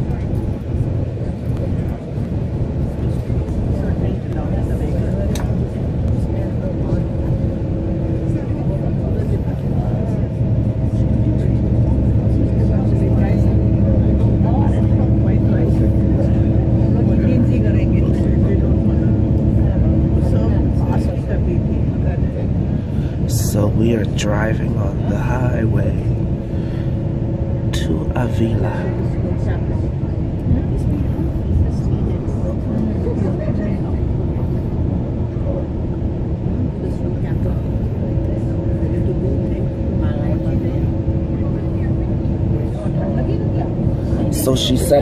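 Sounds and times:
coach engine and road rumble: 0:00.0 - 0:45.0
humming drone: 0:00.0 - 0:45.0.

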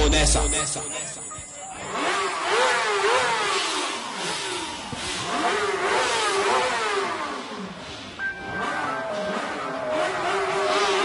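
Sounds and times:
engine revving: 0:01.3 - 0:11.0.

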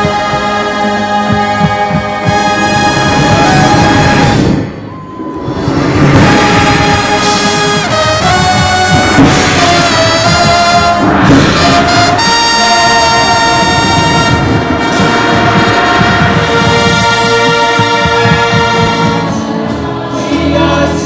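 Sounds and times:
marching band brass playing: 0:00.0 - 0:20.1.

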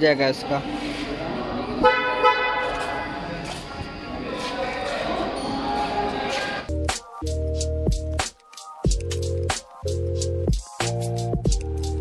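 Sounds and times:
car horn honk: 0:01.8 - 0:03.4.

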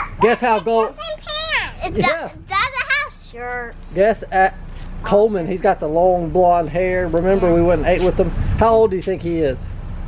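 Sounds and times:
young children chattering: 0:00.0 - 0:04.0.

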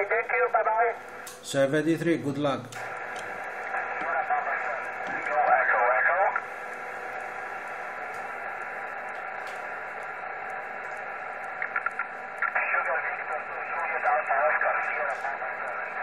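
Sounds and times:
voice over radio: 0:00.0 - 0:01.0, 0:03.8 - 0:06.4, 0:11.8 - 0:16.0
muffled radio receiver hiss: 0:00.0 - 0:01.4, 0:02.6 - 0:16.0.

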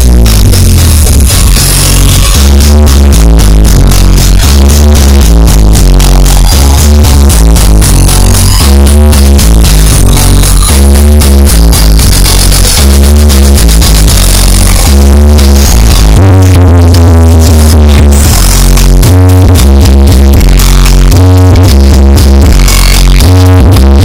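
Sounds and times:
electronic dance music: 0:00.0 - 0:24.0.

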